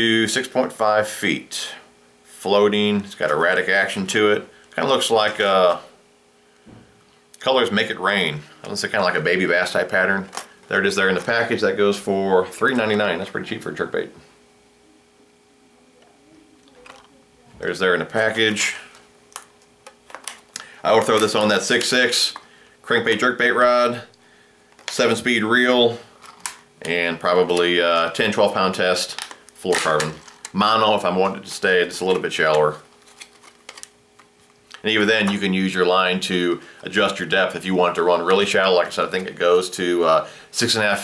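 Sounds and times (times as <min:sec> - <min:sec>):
faint steady hum: 0:00.0 - 0:41.0.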